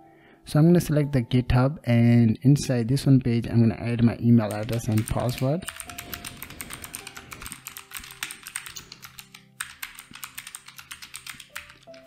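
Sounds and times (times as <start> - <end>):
computer keyboard typing: 4.4 - 12.0.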